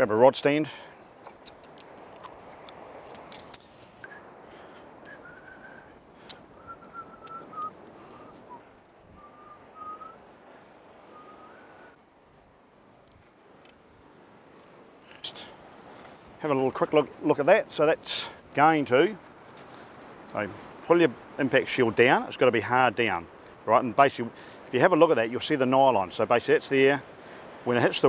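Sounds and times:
faint whistling tune: 5.0 - 10.2, 11.1 - 12.0.

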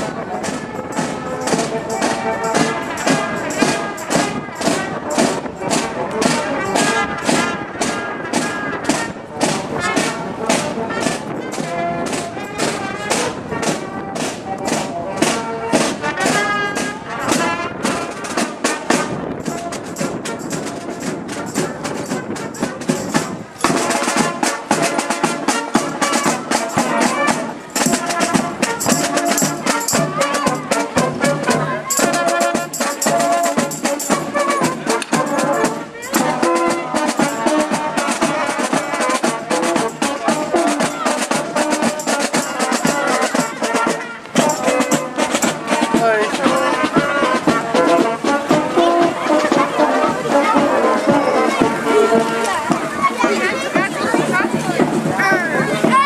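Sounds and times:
brass instruments: 0.0 - 56.0
snare drums and bass drum: 0.0 - 56.0.

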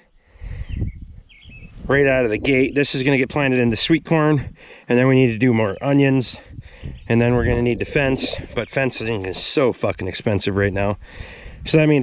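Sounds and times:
faint bird chirps: 0.0 - 1.8.

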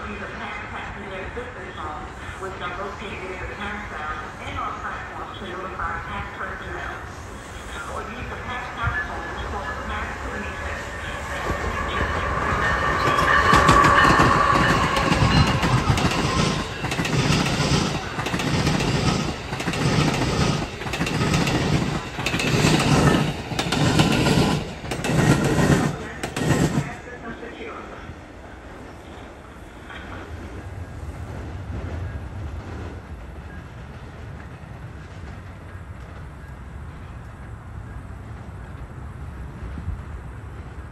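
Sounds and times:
train passing by: 0.0 - 40.9
train rumble: 0.0 - 40.9
wheels clickety-clack over rail joints: 11.4 - 27.2, 31.3 - 37.6.

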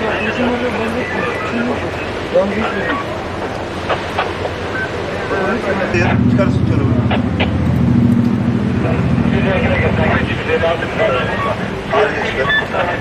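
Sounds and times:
large vehicle engine droning: 0.0 - 13.0
men talking: 0.0 - 13.0.

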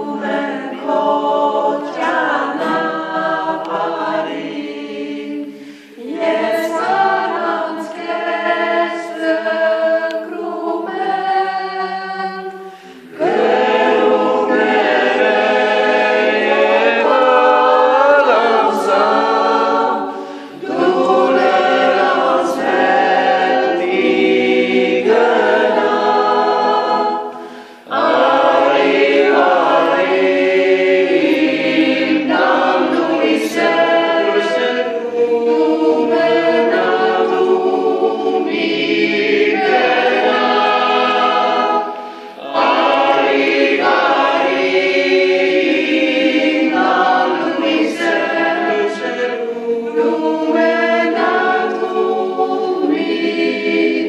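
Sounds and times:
mixed choir singing a cappella: 0.0 - 54.0.

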